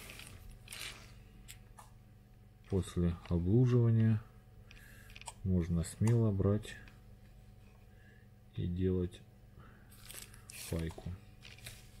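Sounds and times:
plastic bag rustling: 0.0s - 1.2s, 9.9s - 12.0s
low steady hum: 0.0s - 12.0s.

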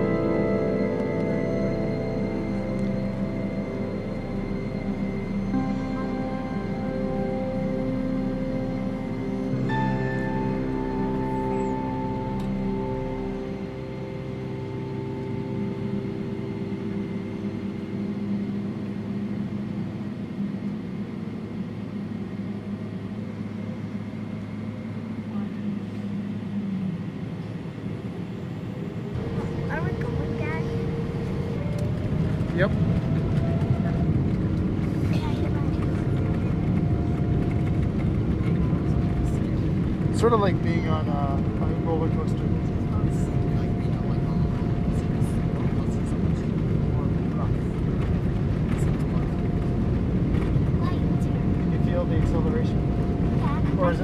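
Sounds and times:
background music: 0.0s - 19.7s, 29.2s - 54.0s
jet engines spooling up: 0.0s - 54.0s
cabin hum: 29.1s - 54.0s.

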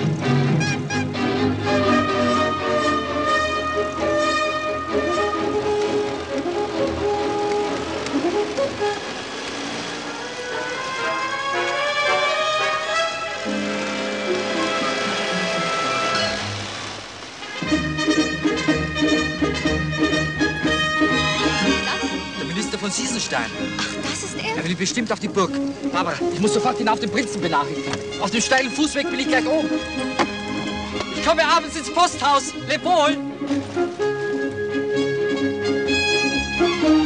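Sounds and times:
orchestral film music: 0.0s - 37.0s.

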